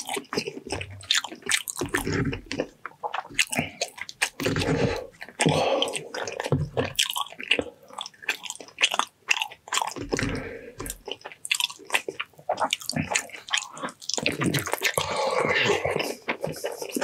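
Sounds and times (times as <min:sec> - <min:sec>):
close chewing and mouth smacks: 0:00.0 - 0:17.0.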